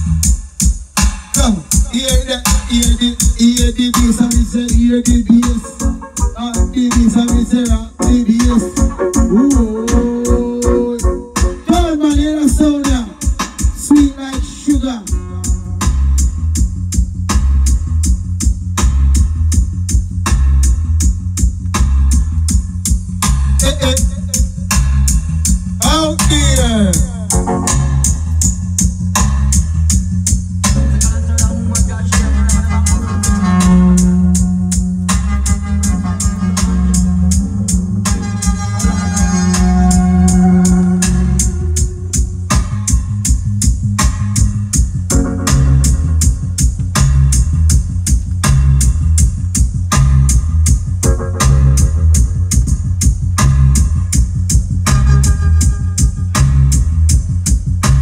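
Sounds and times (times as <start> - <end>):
bass-heavy music over sound system: 0.0 - 58.0
long held keyboard notes: 5.0 - 11.8, 27.3 - 28.6.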